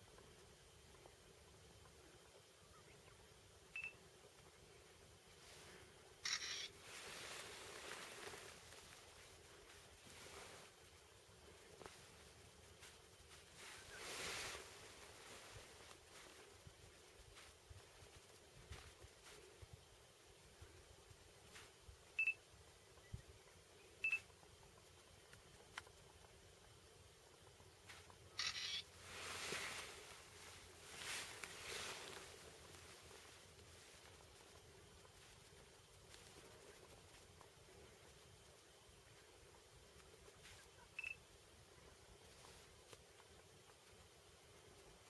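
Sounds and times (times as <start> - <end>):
faint hiss: 0.0 - 45.0.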